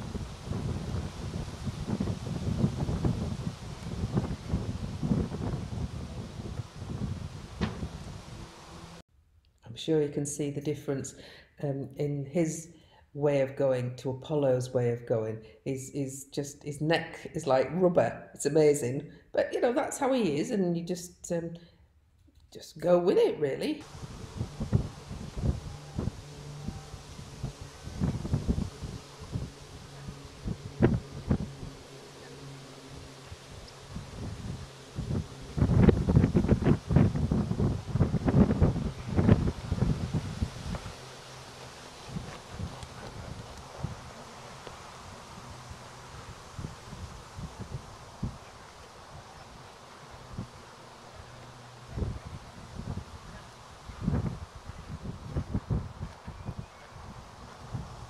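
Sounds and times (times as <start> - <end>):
low steady hum: 0.0 - 9.0, 22.8 - 58.0
wind buffeting microphone: 0.0 - 9.0, 23.8 - 58.0.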